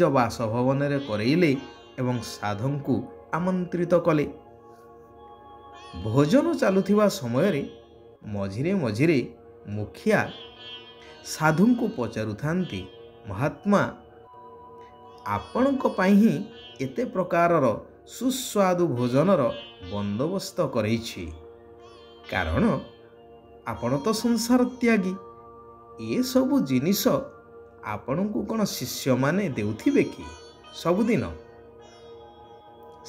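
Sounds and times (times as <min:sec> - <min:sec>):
soft background music: 0:00.0 - 0:33.0
person narrating: 0:15.3 - 0:17.2, 0:22.3 - 0:23.0, 0:27.9 - 0:31.6
person speaking: 0:15.3 - 0:17.8, 0:22.3 - 0:23.0, 0:26.0 - 0:31.5.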